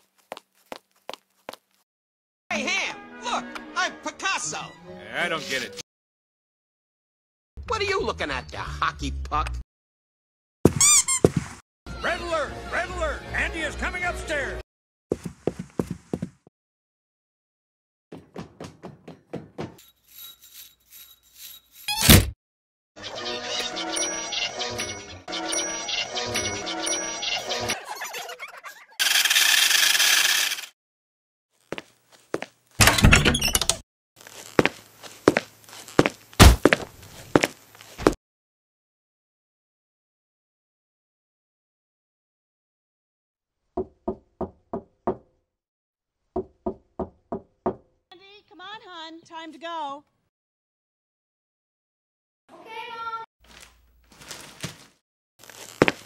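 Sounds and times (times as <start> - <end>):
hurried thudding footsteps: 15.1 - 16.5, 18.1 - 19.8, 34.5 - 38.2
knocking on a door: 43.8 - 45.2, 46.4 - 47.8
woman calling out: 48.1 - 50.0
scurrying rustle: 53.5 - 56.0.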